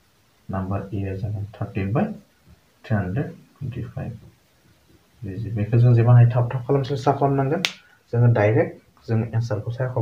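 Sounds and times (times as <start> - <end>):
man speaking in low voice: 2.8 - 4.3, 5.2 - 10.0.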